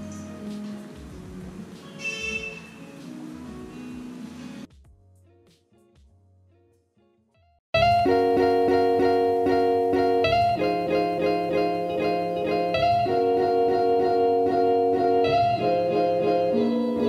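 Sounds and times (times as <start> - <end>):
plucked string notes: 7.8 - 17.0
sustained chords: 7.8 - 17.0.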